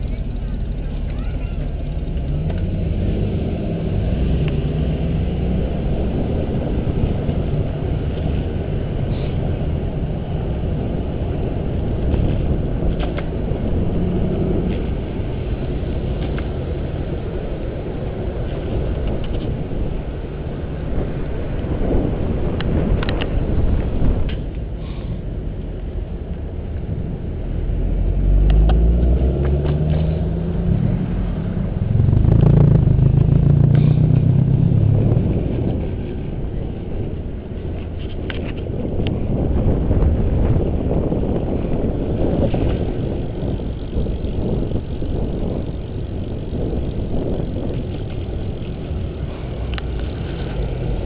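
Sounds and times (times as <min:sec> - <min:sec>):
rolling road noise: 0:00.0 - 0:51.0
wind on microphone: 0:02.6 - 0:51.0.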